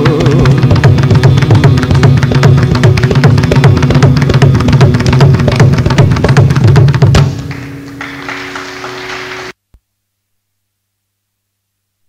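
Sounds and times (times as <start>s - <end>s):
mridangam drum strokes: 0.0s - 9.5s
tanpura drone: 0.1s - 9.5s.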